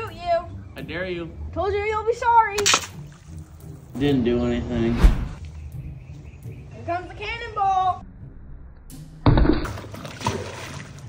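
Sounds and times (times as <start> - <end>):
splash into pool: 2.6 - 3.0, 9.4 - 11.0.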